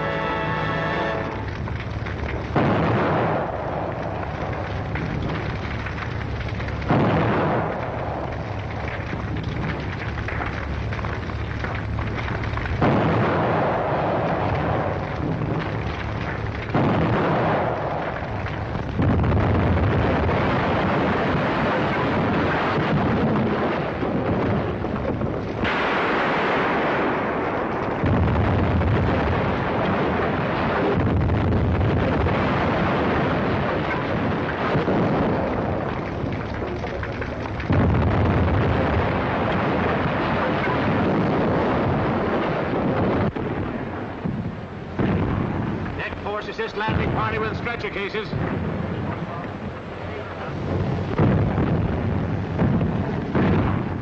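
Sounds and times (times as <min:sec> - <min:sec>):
continuous rumble: 0:00.0 - 0:54.0
heavy explosions: 0:00.0 - 0:54.0.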